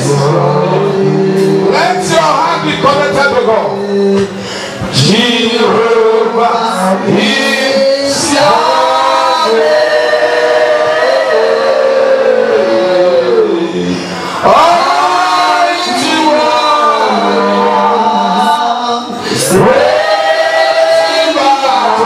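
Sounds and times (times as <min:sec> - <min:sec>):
man singing into a microphone: 0:00.0 - 0:22.0.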